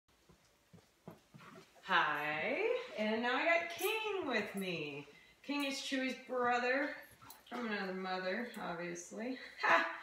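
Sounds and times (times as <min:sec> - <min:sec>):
woman speaking: 0:01.8 - 0:10.0.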